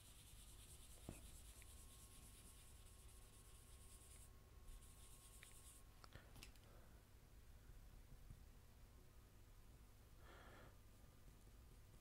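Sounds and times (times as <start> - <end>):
pencil shading on paper: 0.0 - 5.8.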